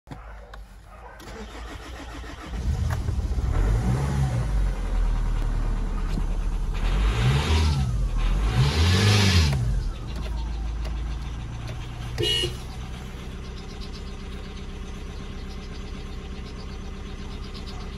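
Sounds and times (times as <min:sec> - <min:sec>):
diesel engine starting and revving: 0:00.9 - 0:17.9.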